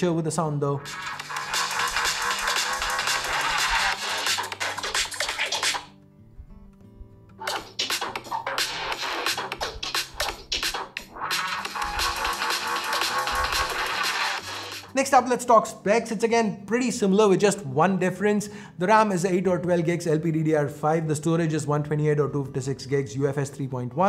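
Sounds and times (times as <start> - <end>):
electronic music from phone speakers: 0.8 - 5.9, 7.4 - 15.0.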